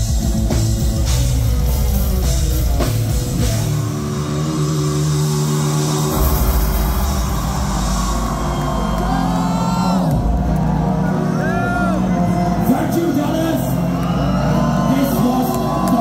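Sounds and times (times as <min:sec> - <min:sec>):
metal band playing live: 0:00.0 - 0:16.0
crowd whoops and whistles: 0:05.7 - 0:16.0.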